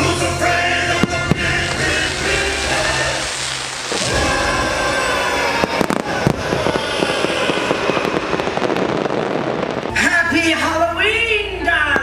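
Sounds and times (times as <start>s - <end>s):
fireworks bangs and crackles: 0.7s - 10.1s.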